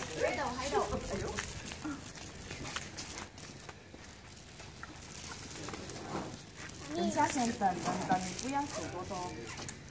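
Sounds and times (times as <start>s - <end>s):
sandalled footsteps on concrete: 0.0s - 9.9s.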